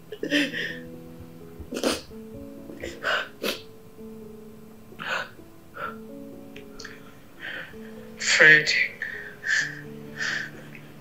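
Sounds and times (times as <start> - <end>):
slow held music notes: 0.0 - 11.0.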